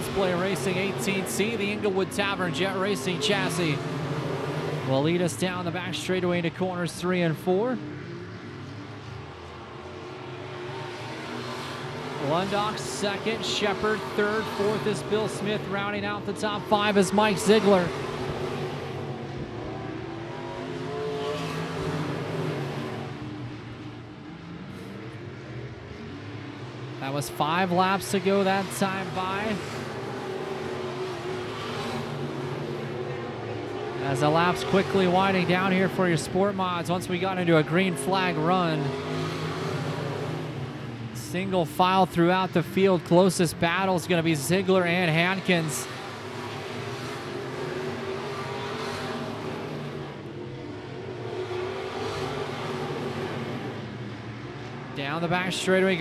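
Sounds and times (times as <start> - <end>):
race car engines racing: 0.0 - 56.0.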